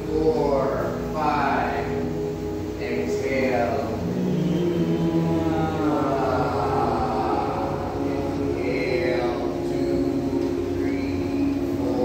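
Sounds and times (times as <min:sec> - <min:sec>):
voices holding long tones: 0:00.0 - 0:12.0.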